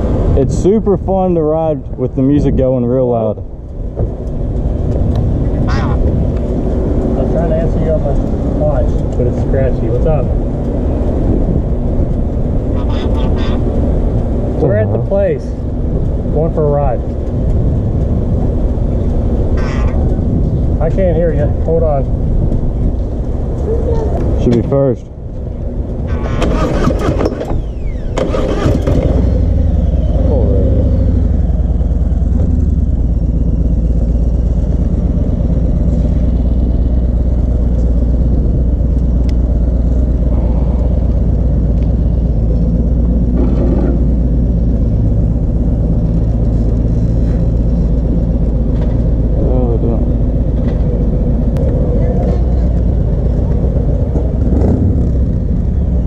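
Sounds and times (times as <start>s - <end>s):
motorcycle engine rumbling: 0.0s - 56.0s
motorcycle engine starting: 26.0s - 33.6s.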